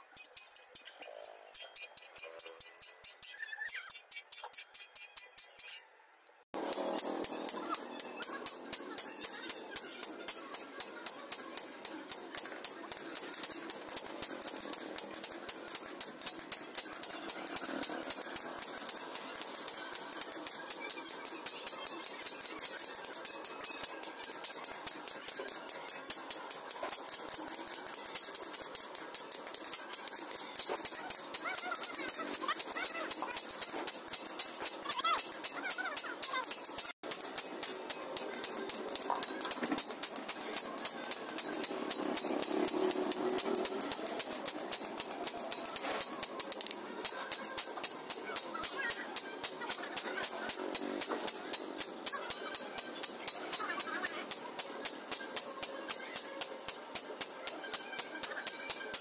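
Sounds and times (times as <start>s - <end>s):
hammer striking chisel on steel: 6.6s - 59.0s.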